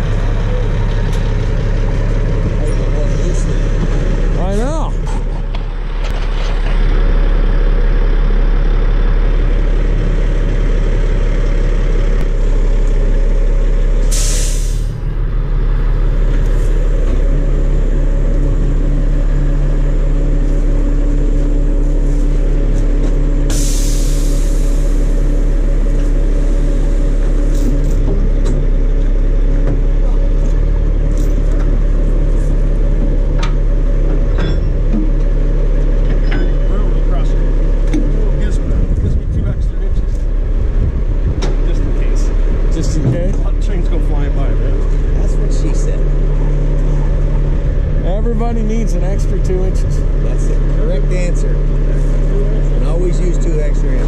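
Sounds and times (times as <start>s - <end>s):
diesel truck engine idling: 0.0s - 54.0s
air brake hiss: 14.0s - 14.9s, 23.5s - 25.0s.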